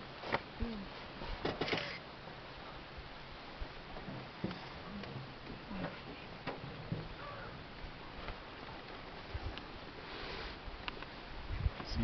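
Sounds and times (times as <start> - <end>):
low background hiss: 0.0 - 12.0.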